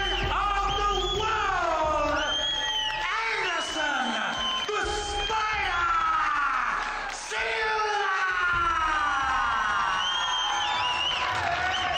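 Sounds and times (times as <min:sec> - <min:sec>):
crowd cheering: 0:00.0 - 0:11.9.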